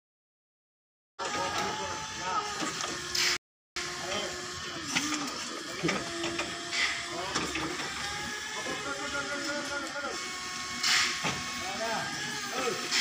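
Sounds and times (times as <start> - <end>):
people talking: 1.2 - 2.6, 4.0 - 6.1, 7.1 - 7.8, 8.6 - 10.2, 11.6 - 12.9.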